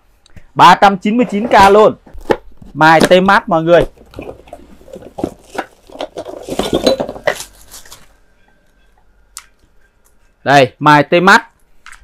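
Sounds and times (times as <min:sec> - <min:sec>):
cardboard and plastic wrapping rustling: 0:01.3 - 0:08.4.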